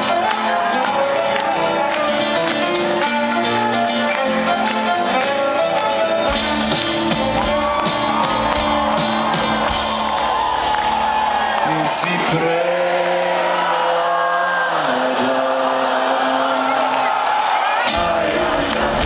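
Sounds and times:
live band playing: 0.0 - 11.7
crowd whooping: 0.0 - 19.0.

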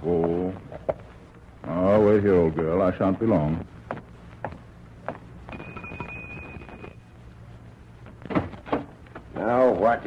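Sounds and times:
faint footstep thumps: 3.8 - 5.3.

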